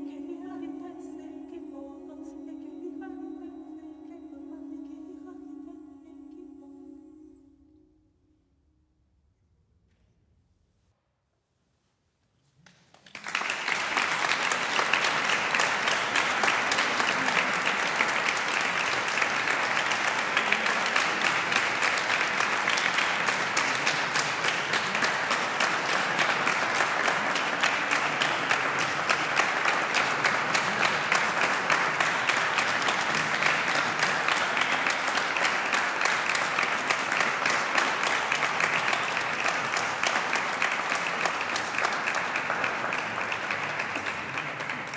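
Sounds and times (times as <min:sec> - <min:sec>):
audience applauding: 0:12.7 - 0:44.9.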